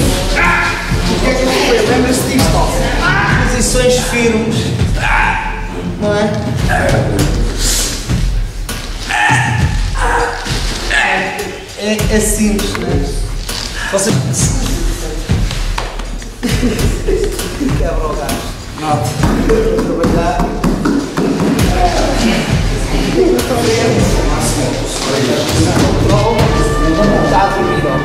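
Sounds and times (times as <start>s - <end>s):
background music: 0.0s - 28.0s
voices: 0.0s - 28.0s.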